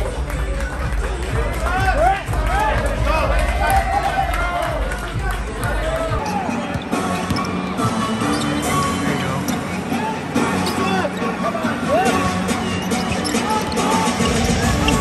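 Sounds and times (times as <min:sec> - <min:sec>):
arena music: 0:00.0 - 0:15.0
crowd and player voices: 0:00.0 - 0:15.0.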